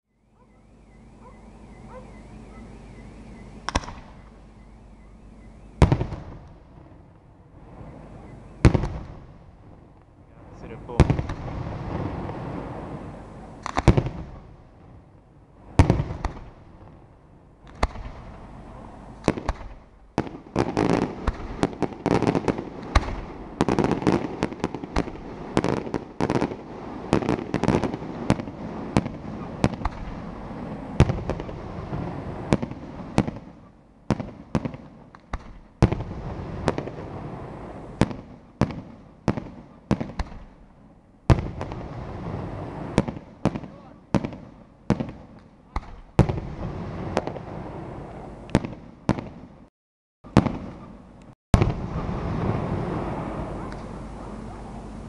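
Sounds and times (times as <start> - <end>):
fireworks bangs: 3.6 - 4.3, 5.6 - 49.7, 50.3 - 55.0
fireworks crackling: 5.8 - 49.7, 50.3 - 55.0.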